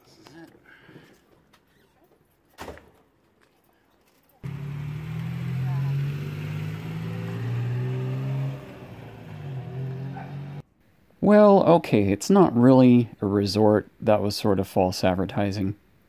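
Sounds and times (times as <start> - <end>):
tuk-tuk engine humming: 4.4 - 10.6.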